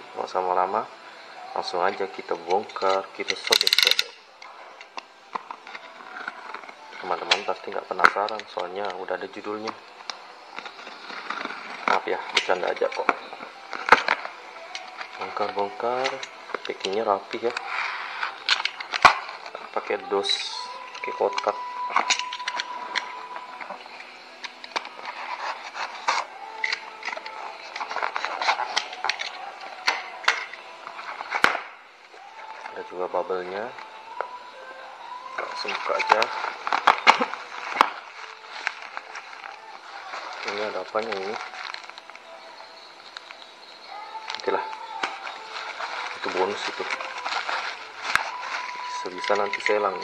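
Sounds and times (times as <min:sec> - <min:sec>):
bubble wrap crinkling: 0:01.4 - 0:50.0
tape tearing: 0:02.5 - 0:31.8, 0:35.6 - 0:42.4, 0:44.1 - 0:50.0.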